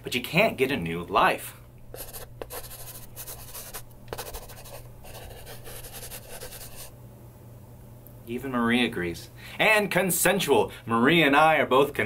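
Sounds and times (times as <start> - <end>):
scratchy text-scroll sound effect: 1.9 - 6.9.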